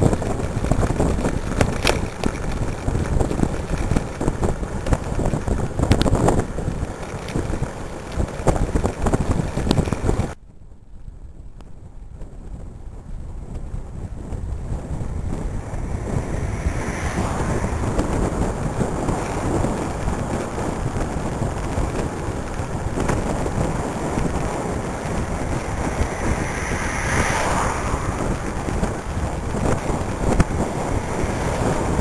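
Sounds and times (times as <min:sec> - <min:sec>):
wind rushing over microphone: 0:00.0 - 0:32.0.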